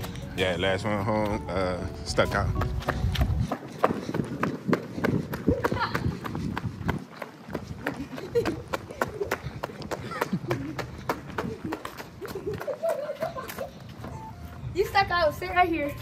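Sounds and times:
footsteps running on pavement: 0:00.0 - 0:15.0.

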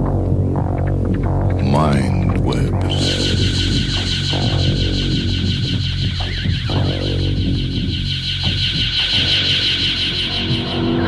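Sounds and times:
low electronic hum: 0:00.0 - 0:11.0
wavering high electronic tone: 0:02.2 - 0:11.0.

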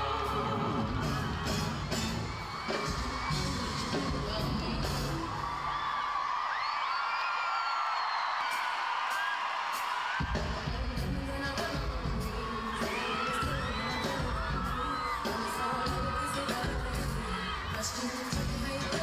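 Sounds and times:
crowd screaming and cheering: 0:00.0 - 0:19.0
band with heavy beat: 0:00.1 - 0:05.4, 0:08.5 - 0:19.0
female vocal group singing: 0:10.7 - 0:19.0.

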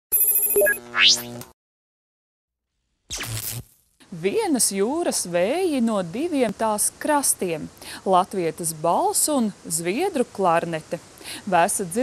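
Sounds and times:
electronic jingle: 0:00.1 - 0:01.2
quick blips: 0:00.1 - 0:01.4.

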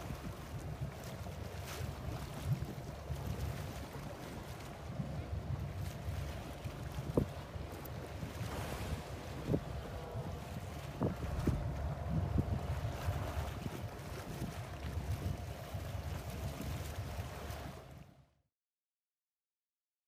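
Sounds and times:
wind on microphone: 0:00.0 - 0:18.1
water splashing against hull: 0:00.0 - 0:18.3
boat engine hum: 0:00.0 - 0:18.4.

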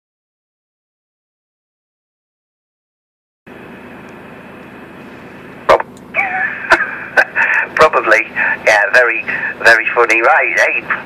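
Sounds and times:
radio carrier hiss: 0:05.0 - 0:11.0
narrow-band radio voice: 0:05.6 - 0:06.5, 0:07.2 - 0:11.0.

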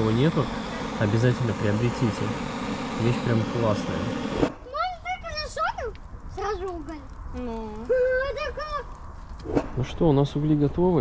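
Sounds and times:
gas torch hissing: 0:00.0 - 0:04.7.

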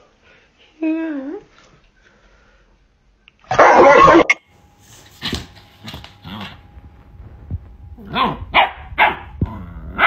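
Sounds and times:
puppy barking: 0:03.5 - 0:04.3, 0:08.1 - 0:09.4.

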